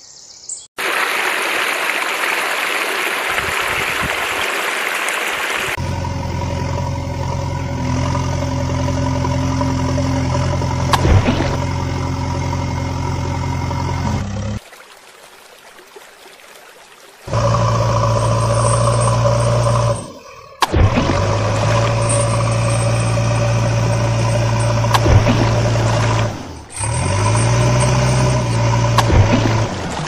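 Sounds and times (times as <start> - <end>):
running water: 0.8 - 5.8, 9.2 - 30.0
engine idling: 5.8 - 14.6, 17.3 - 30.0.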